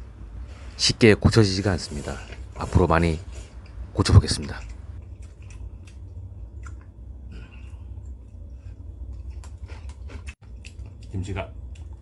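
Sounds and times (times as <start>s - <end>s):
steady low hum: 0.0s - 12.0s
person chewing with lip smacks: 4.6s - 6.9s, 9.1s - 12.0s.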